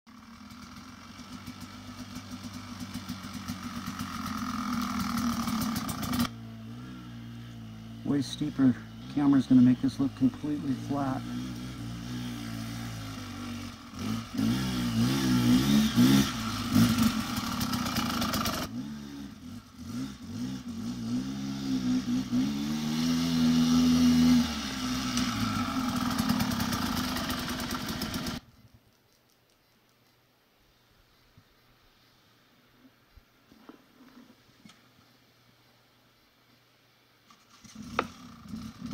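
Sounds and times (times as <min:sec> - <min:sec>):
motorcycle engine revving: 0:00.1 - 0:28.5, 0:37.4 - 0:38.9.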